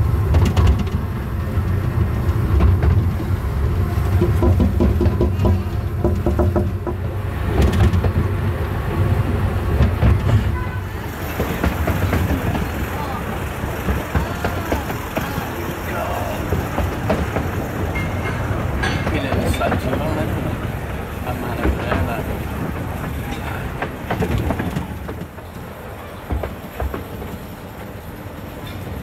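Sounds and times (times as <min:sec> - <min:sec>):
passengers talking: 0:00.0 - 0:29.0
train wheels rumbling on track: 0:00.0 - 0:29.0.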